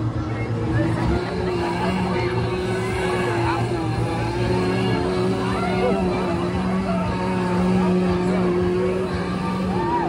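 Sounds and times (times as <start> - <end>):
engine-like drone: 0.0 - 10.0
faint voices: 0.0 - 10.0.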